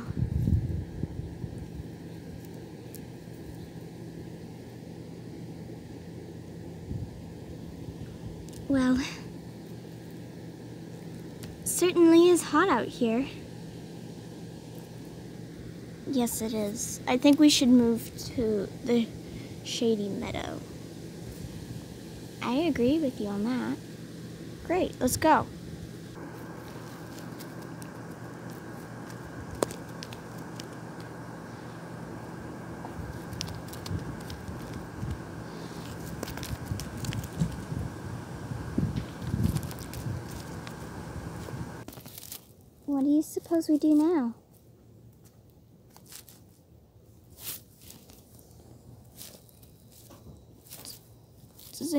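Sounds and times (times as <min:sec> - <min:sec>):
steady low hum: 0:00.0 - 0:51.9
rustling grass and dry dirt: 0:26.2 - 0:51.9.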